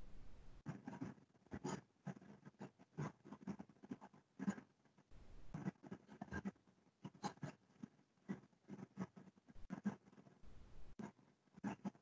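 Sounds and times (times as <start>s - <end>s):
scratchy writing strokes: 0.6s - 12.0s.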